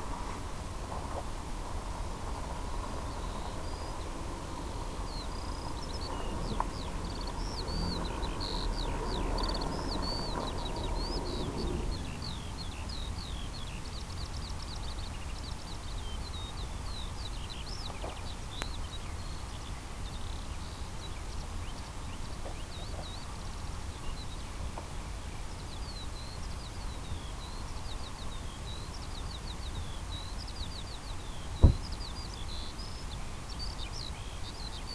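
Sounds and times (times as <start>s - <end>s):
low rumble: 0.0s - 13.1s
bird singing: 2.8s - 34.9s.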